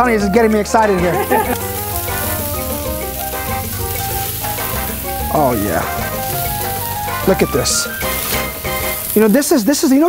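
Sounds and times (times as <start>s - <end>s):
background music of held notes: 0.0s - 10.0s
burger patties sizzling on grill: 0.4s - 10.0s.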